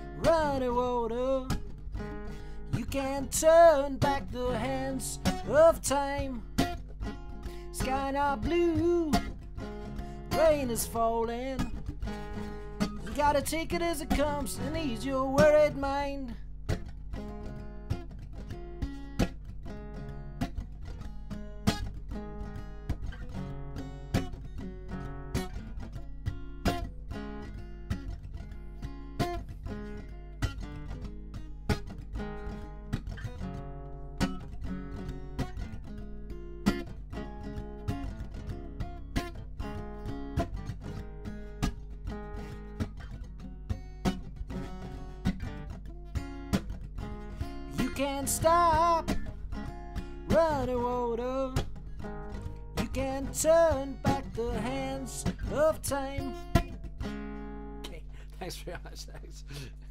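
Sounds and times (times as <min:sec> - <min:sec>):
acoustic guitar strumming chords: 0:00.0 - 0:59.9.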